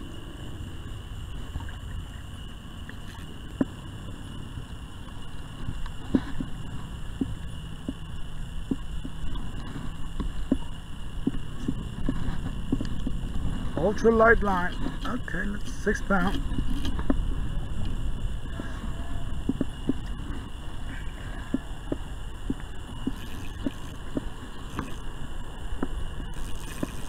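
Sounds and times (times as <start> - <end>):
water rumbling: 0.0 - 27.0
wind rumbling: 0.0 - 27.0
fishing reel ticking: 19.4 - 25.1, 25.7 - 27.0.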